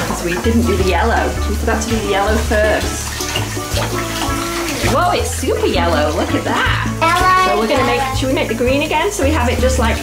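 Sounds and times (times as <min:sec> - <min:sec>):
background music with bass line: 0:00.0 - 0:10.0
bath water sloshing: 0:00.0 - 0:10.0.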